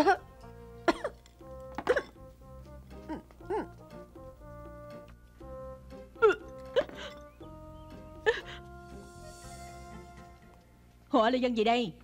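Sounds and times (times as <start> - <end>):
background music held notes: 0.0 - 11.1.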